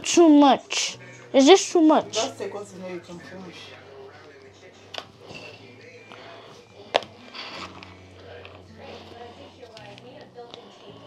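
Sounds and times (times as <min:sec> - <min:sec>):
quiet talking: 0:00.0 - 0:11.0.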